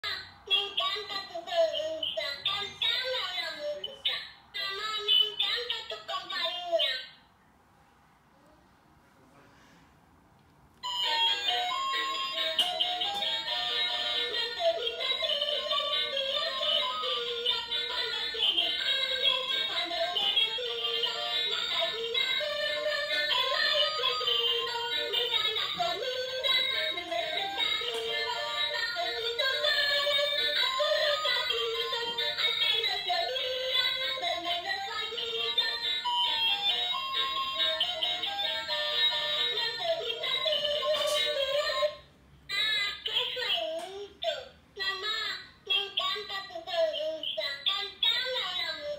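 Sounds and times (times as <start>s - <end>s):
toy electronic melody: 10.8s - 41.9s.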